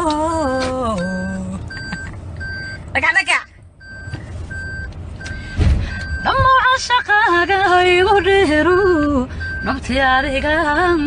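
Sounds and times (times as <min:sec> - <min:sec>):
constant low rumble: 0:00.0 - 0:11.0
electronic beeping: 0:01.0 - 0:02.8, 0:03.8 - 0:07.2, 0:09.4 - 0:09.8.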